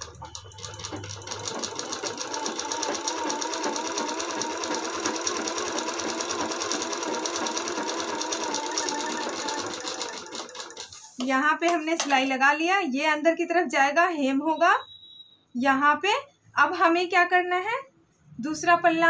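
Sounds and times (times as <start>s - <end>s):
sewing machine stitching: 0.0s - 11.2s.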